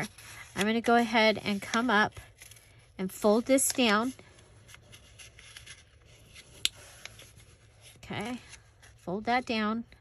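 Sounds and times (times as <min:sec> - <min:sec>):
paper page rustling and creasing: 0:00.0 - 0:09.4.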